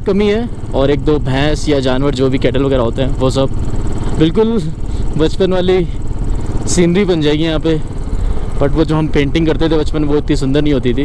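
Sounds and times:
man talking: 0.0 - 6.0, 6.6 - 7.9, 8.5 - 11.0
motorcycle engine running: 0.0 - 11.0.

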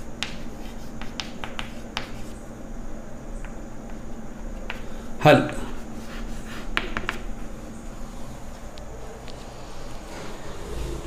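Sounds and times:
chalk clicking on blackboard: 0.0 - 2.4, 4.6 - 7.3.

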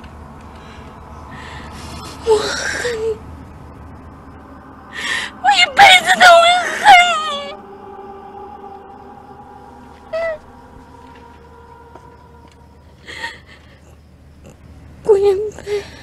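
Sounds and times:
woman wailing and sobbing: 4.9 - 8.9, 10.0 - 10.5.

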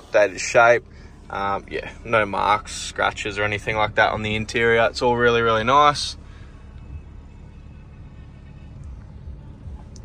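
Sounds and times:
low steady rumble: 0.0 - 10.0
radio music playing quietly: 0.0 - 10.0.

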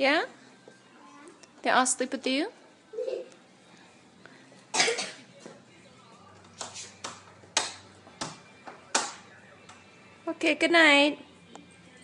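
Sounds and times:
short loud cough: 4.7 - 5.3.

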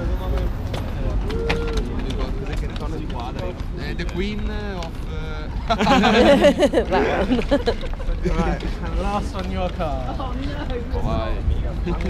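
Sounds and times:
low city rumble: 0.0 - 12.0
people talking nearby: 0.0 - 12.0.

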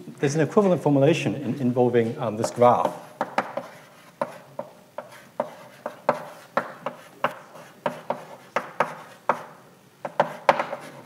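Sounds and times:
chalk scraping on blackboard: 2.4 - 11.0
chalk tapping on blackboard: 2.4 - 11.0.

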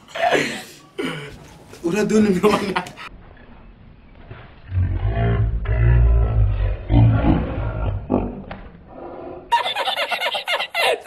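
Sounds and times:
deep rumbling roar: 4.6 - 9.5.

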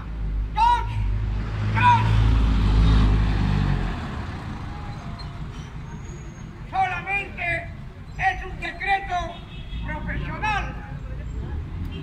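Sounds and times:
vehicle driving past: 1.1 - 6.6.

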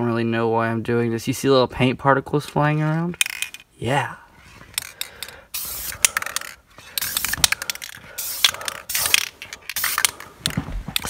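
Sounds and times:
spray can clicking: 4.8 - 11.0
spray can hissing: 5.5 - 10.2.

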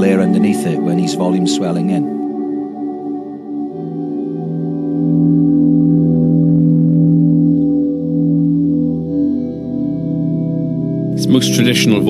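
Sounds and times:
electric guitar with reverb: 0.0 - 12.0.

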